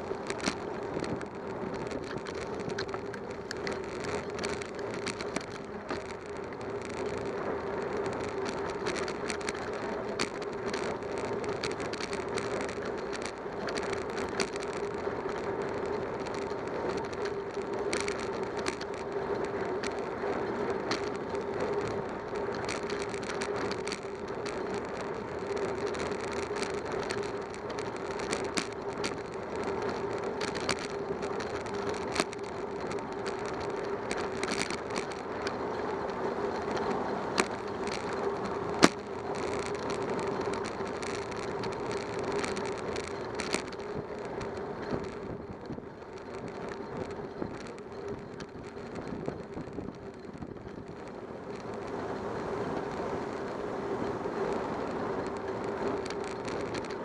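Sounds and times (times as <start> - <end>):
bicycle tyres humming: 0.0 - 57.0
small clicks and rattles: 0.0 - 57.0.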